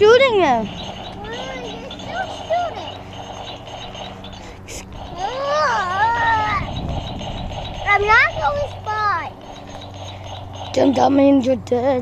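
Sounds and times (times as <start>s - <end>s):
steady low hum: 0.0s - 12.0s
child's high-pitched vocal sounds: 5.1s - 6.7s.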